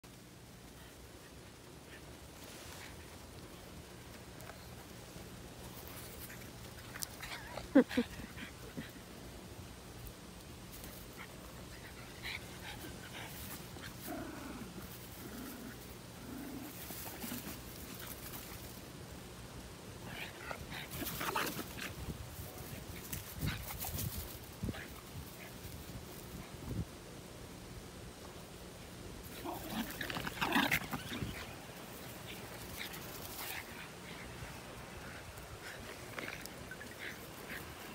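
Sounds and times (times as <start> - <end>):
dogs rooting in dry grass: 0.0 - 37.9
small dogs vocalizing: 20.0 - 26.4, 29.2 - 37.9.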